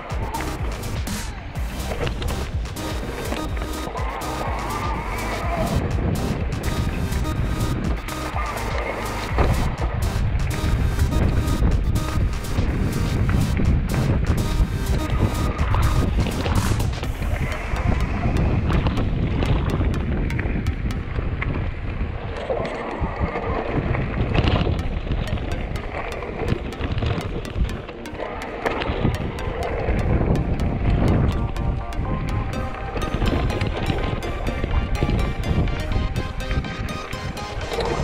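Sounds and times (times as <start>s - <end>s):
background music: 0.0s - 21.5s, 24.7s - 38.0s
wind buffeting microphone: 5.4s - 8.1s, 9.3s - 28.0s.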